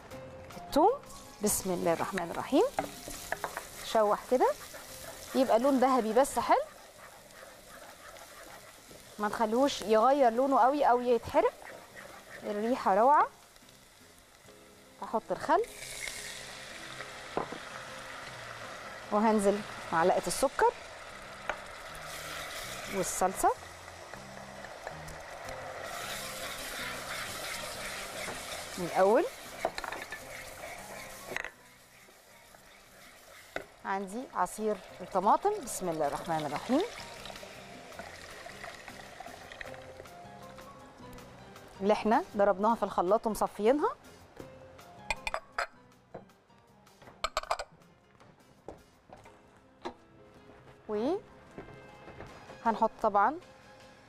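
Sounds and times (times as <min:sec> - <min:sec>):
soft background music: 0:00.0 - 0:54.0
garlic sizzling in hot oil: 0:00.8 - 0:40.8.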